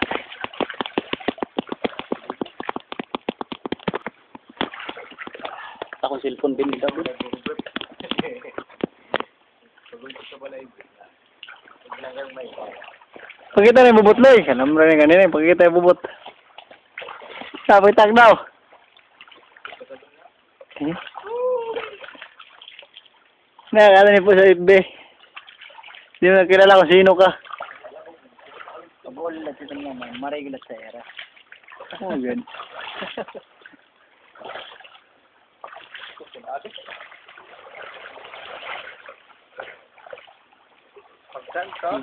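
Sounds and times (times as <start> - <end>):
faint background hiss: 0.0 - 42.0
river water splashing: 0.0 - 42.0
person calling out: 21.2 - 22.0
person exclaiming: 21.2 - 22.0.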